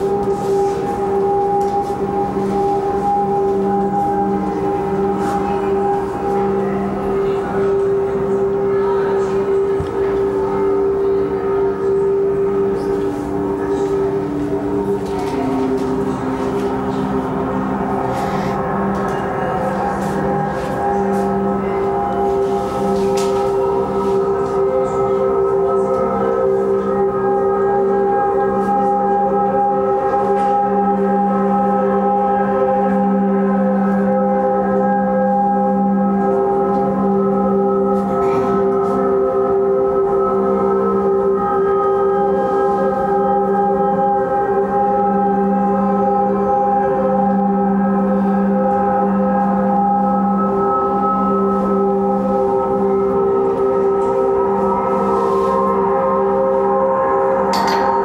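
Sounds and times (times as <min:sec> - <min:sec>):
droning low chord over loudspeakers: 0:00.0 - 0:58.0.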